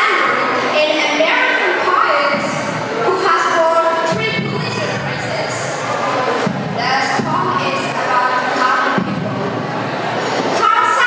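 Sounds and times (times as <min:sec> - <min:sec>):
audience murmur: 0:00.0 - 0:11.0.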